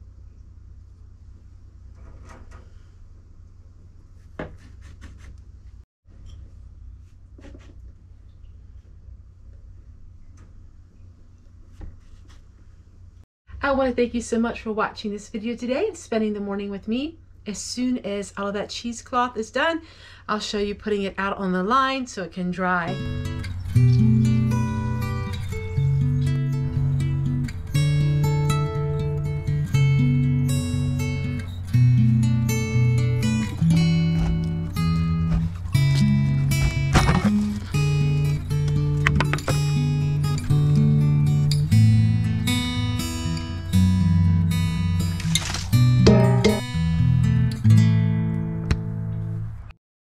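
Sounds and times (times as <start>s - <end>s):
strummed acoustic guitar: 22.9s - 49.2s
steady bass: 22.9s - 49.4s.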